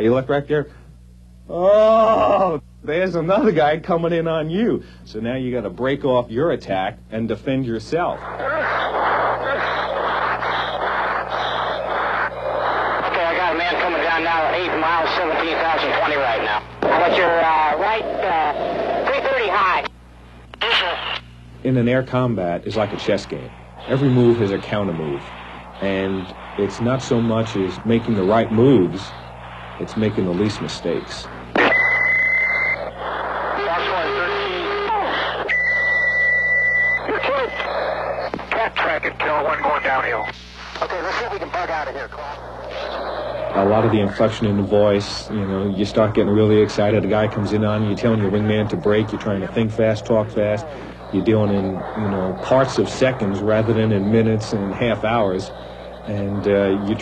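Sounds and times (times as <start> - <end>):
steady electrical hum: 0.0 - 57.0
rushing radio noise: 5.6 - 57.0
garbled radio voices: 7.6 - 57.0.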